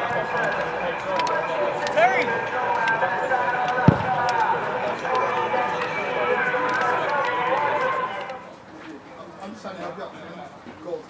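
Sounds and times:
babble of voices: 0.0 - 10.9.

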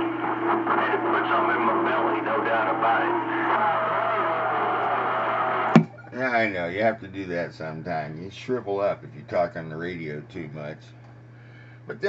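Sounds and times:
radio static hiss: 0.0 - 6.3.

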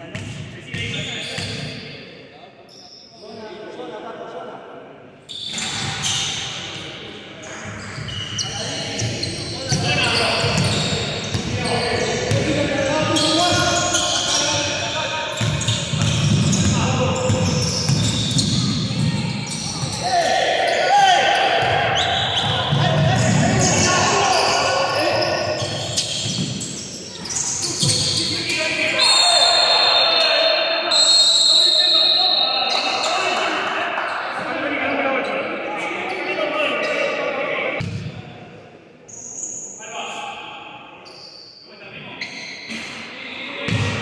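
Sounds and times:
players calling out: 7.5 - 37.8
shoes squeaking: 22.0 - 30.4.

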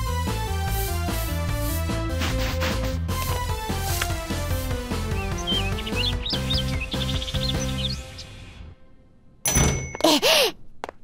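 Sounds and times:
light cartoon music: 0.0 - 10.6
bird-like chirps: 5.0 - 8.4.

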